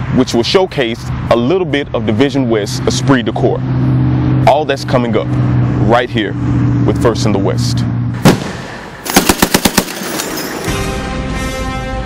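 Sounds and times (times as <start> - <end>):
automatic gunfire: 8.3 - 10.6
theme music: 10.3 - 12.0.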